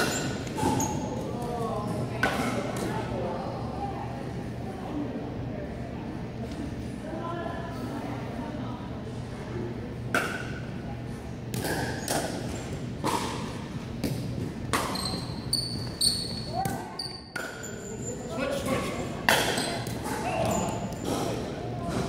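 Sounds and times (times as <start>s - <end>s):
sneaker squeaks on floor: 0.0s - 1.2s, 14.8s - 18.1s.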